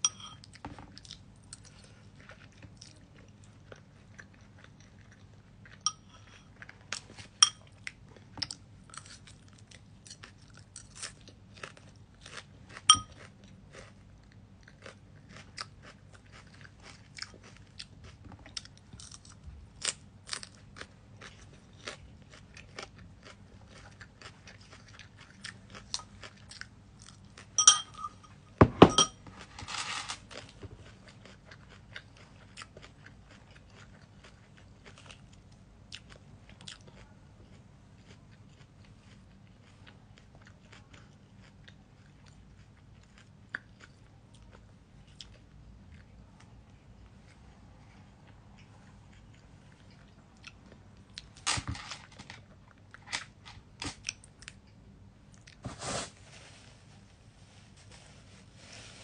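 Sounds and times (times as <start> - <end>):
metal fork clinking on bowl: 0.0 - 0.5, 5.9 - 6.4, 7.4 - 7.6, 12.9 - 13.2, 27.6 - 29.2
crunchy chewing of lettuce: 8.2 - 27.6, 29.4 - 46.1.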